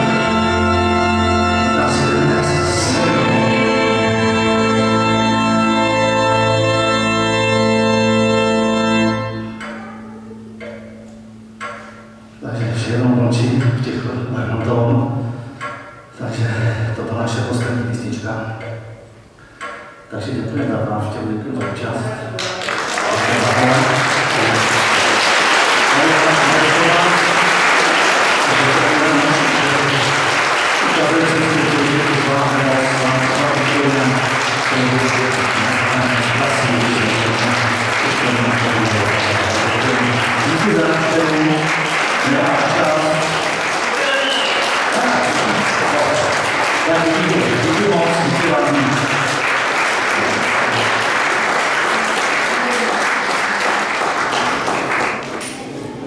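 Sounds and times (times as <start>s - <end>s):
audience applauding: 22.4s - 55.8s.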